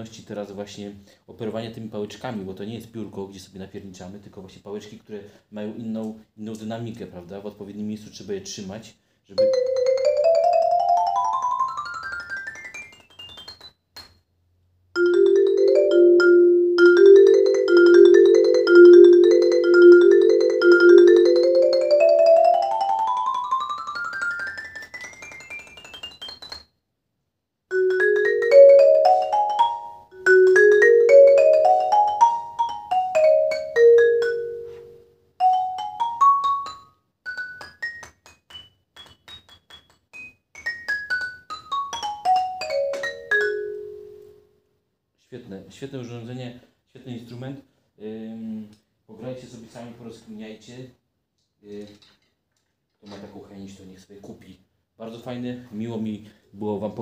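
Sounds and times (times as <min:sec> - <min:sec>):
xylophone played with mallets: 0:09.4 - 0:14.2, 0:15.0 - 0:26.7, 0:27.7 - 0:44.4.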